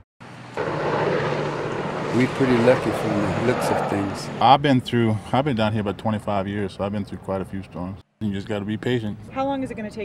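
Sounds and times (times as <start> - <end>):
engine drone: 0.2 - 5.5.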